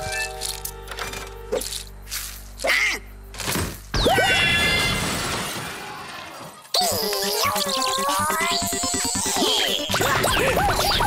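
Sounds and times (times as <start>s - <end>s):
music: 0.0s - 4.0s, 6.8s - 11.0s
cartoon character voice: 6.8s - 11.0s.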